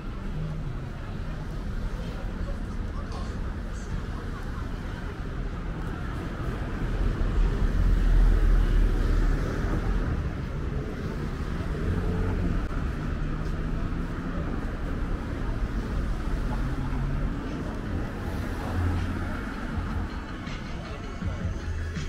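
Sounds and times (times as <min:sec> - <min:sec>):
cars driving past: 0:00.0 - 0:21.8.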